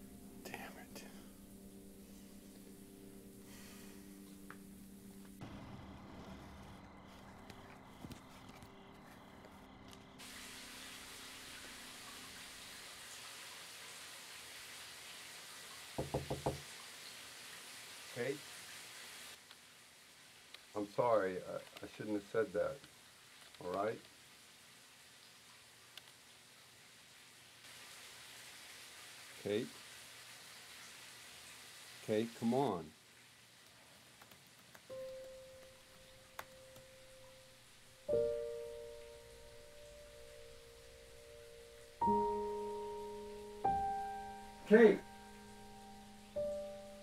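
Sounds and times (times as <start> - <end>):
faint steady hiss: 0.0 - 47.0
knocks on a door: 16.0 - 16.7
man calling out: 44.7 - 45.1.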